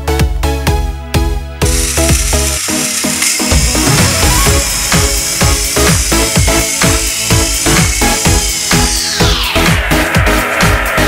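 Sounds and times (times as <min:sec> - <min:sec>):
electronic dance music: 0:01.6 - 0:11.0
hissing wash: 0:01.6 - 0:11.0.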